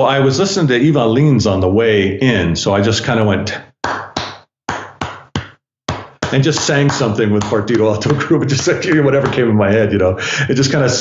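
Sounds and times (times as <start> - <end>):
sharp percussive hits: 3.8 - 9.5.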